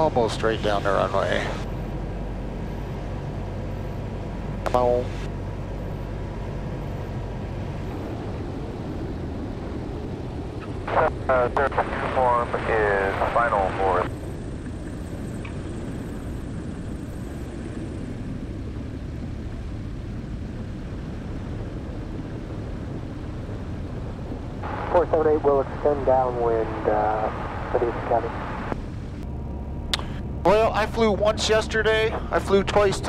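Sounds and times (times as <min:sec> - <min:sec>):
aircraft engine and propeller drone: 0:00.0 - 0:33.0.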